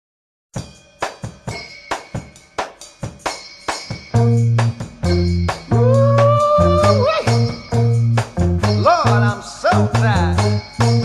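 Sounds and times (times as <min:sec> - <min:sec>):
drum kit beat: 0:00.6 - 0:11.0.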